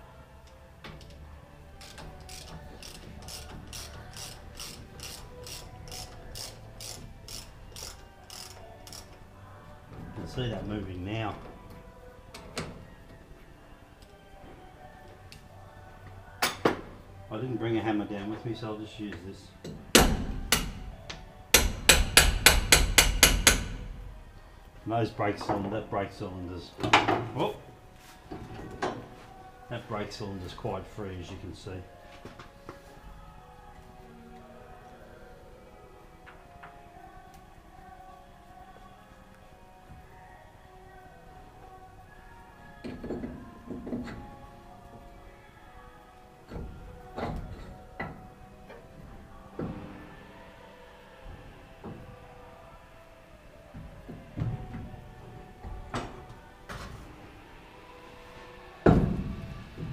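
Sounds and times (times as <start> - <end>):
ratchet spanner clicking: 1.8 - 9.1.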